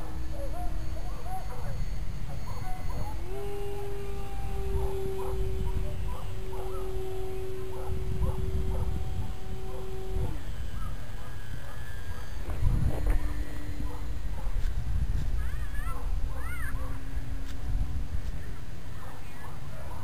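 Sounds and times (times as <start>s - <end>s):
rc plane electric motor whine: 0.0s - 20.0s
wind rumbling on microphone: 0.0s - 20.0s.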